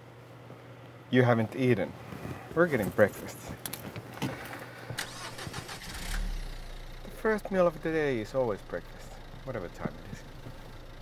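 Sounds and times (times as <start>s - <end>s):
car engine starting: 5.0s - 11.0s.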